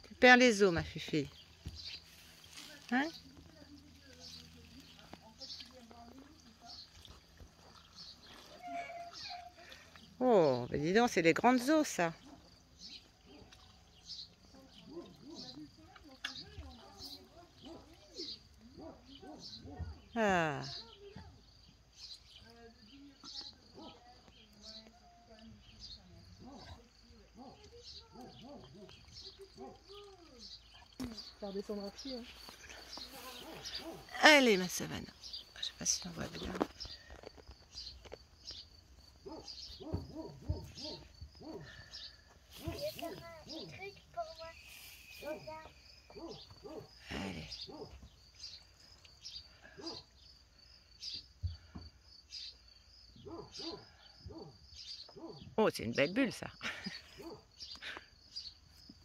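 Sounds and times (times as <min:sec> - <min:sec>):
voices murmuring: 0:00.0 - 0:50.3.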